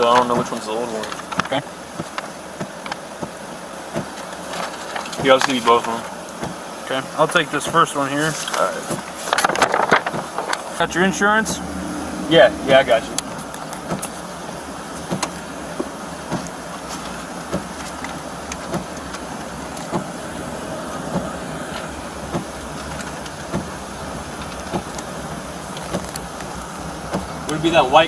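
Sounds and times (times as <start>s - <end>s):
car idling: 0.0s - 28.0s.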